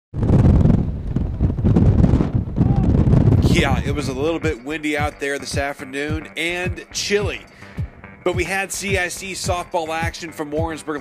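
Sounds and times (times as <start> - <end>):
wind buffeting microphone: 0.1 - 9.6.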